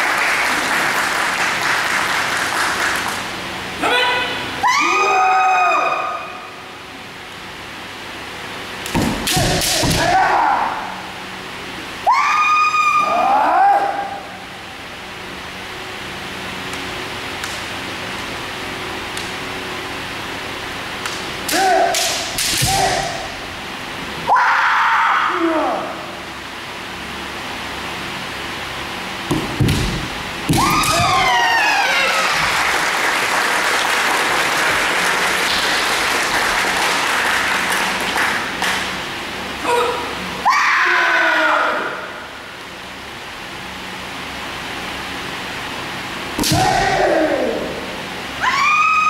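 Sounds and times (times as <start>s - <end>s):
spectators applauding: 0.0s - 3.3s, 31.0s - 39.0s
bamboo sword strikes: 8.9s - 10.3s, 21.5s - 23.2s, 46.4s - 47.1s
long rising yells: 30.6s - 32.8s, 48.4s - 49.0s.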